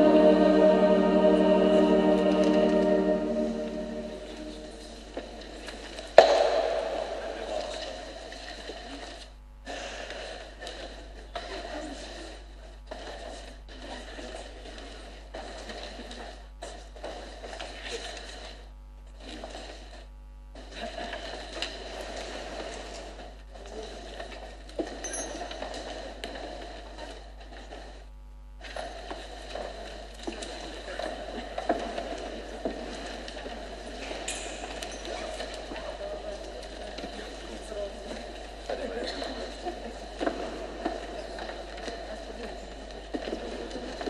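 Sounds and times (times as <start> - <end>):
murmur of voices in church: 0.0 - 44.0.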